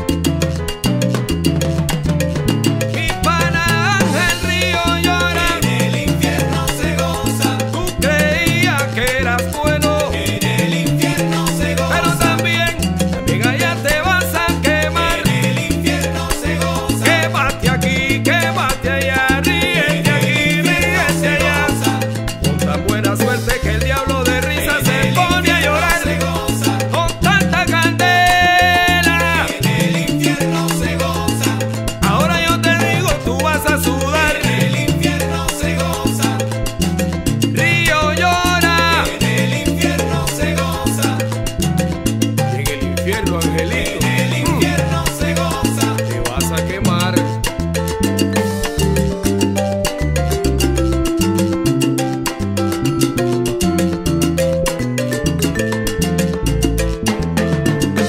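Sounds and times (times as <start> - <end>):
instrumental salsa music: 0.0 - 58.0.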